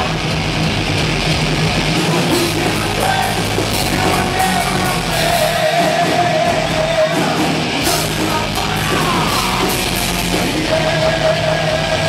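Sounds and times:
bass droning note: 0:00.0 - 0:05.8, 0:06.4 - 0:12.0
distorted electric guitars: 0:00.0 - 0:12.0.

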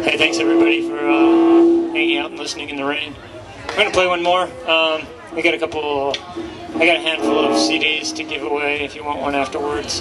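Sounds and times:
held note on amplified string instrument: 0:00.0 - 0:02.4, 0:06.7 - 0:08.8.

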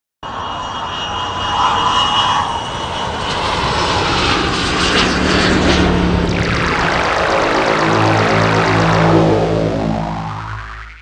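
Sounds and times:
whooshing rumbling logo sound: 0:05.5 - 0:10.9
low steady hum: 0:06.1 - 0:11.0.

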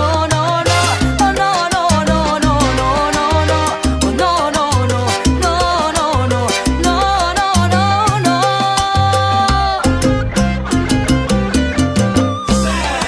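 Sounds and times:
salsa band music: 0:00.0 - 0:13.0.

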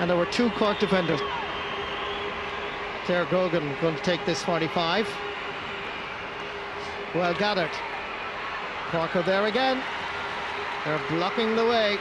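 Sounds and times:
stadium crowd murmur: 0:00.0 - 0:12.0.

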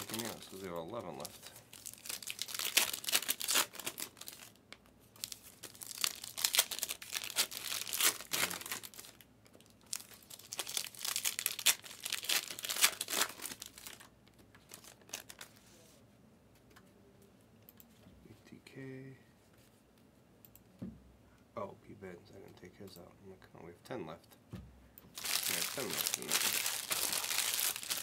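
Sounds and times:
plastic wrapping crinkling and tearing: 0:00.0 - 0:04.6, 0:05.2 - 0:15.6, 0:25.2 - 0:28.0.

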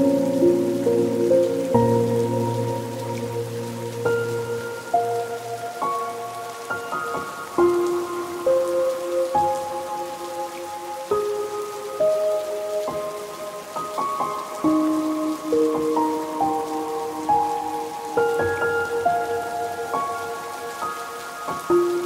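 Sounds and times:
steady rain: 0:00.0 - 0:22.0.

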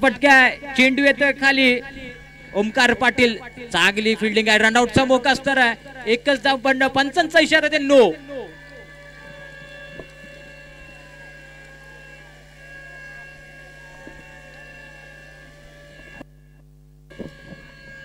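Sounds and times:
faint high whining tones: 0:00.0 - 0:18.0
faint wavering sounds: 0:00.0 - 0:18.0
low electrical hum: 0:00.0 - 0:18.0.

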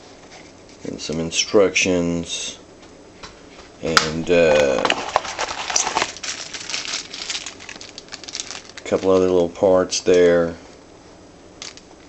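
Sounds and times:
plastic bag crinkling: 0:04.2 - 0:09.5, 0:11.6 - 0:11.9.

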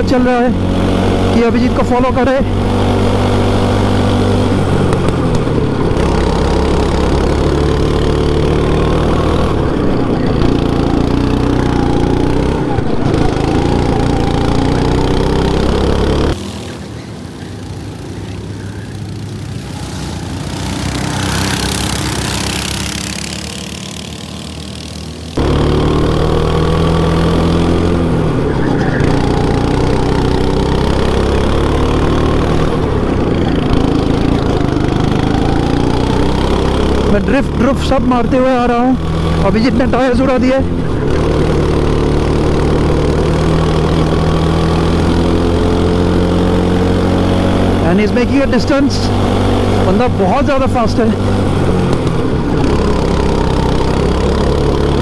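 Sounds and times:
go-kart engine accelerating: 0:00.0 - 0:55.0
kart engine passing by: 0:02.3 - 0:55.0.

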